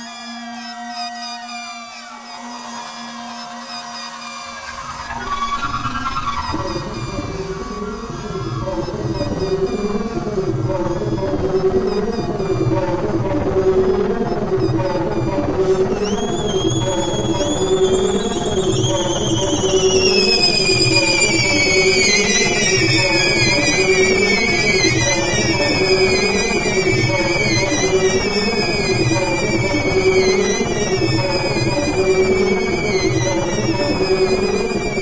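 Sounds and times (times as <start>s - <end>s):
low pulsing synthesizer: 2.0s - 35.0s.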